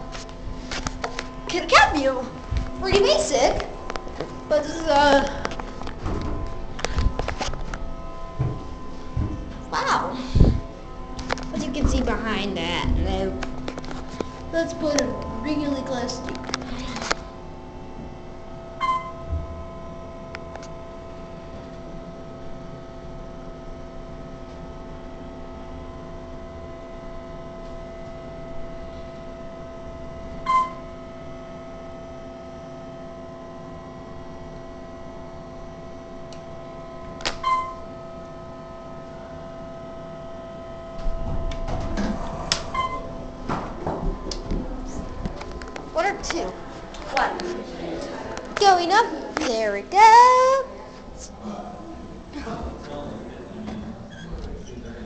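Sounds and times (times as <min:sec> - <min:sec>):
elevator hum: 0:00.0 - 0:55.0.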